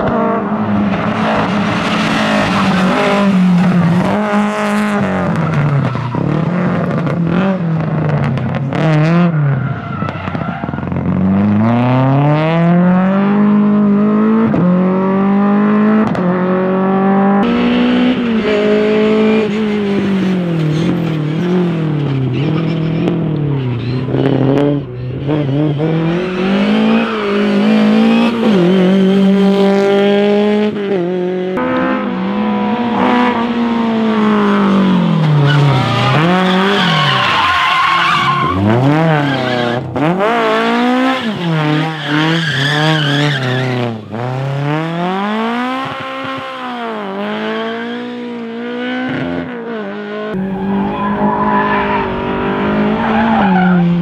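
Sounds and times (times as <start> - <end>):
rally car engines revving: 0.0 - 54.0
tyre squeal: 34.7 - 39.9, 41.1 - 44.0.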